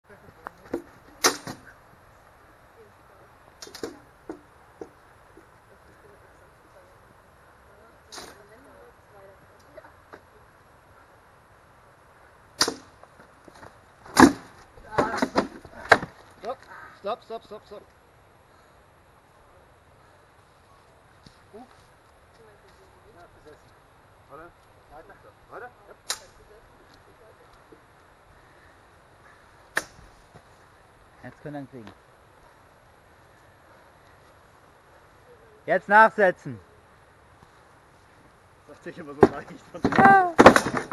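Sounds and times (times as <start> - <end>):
swords striking shields: 39.2 - 40.9.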